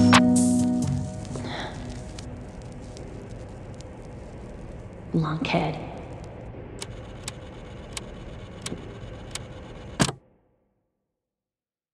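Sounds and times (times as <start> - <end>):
steady hiss: 0.0 - 8.2
faint low hum: 0.8 - 10.3
sharp ticks: 6.8 - 9.5.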